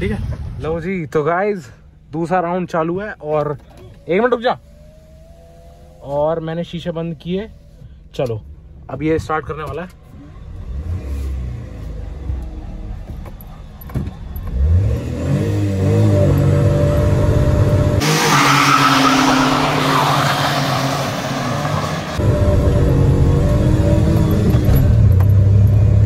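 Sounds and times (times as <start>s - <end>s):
car engine revving: 10.0s - 26.0s.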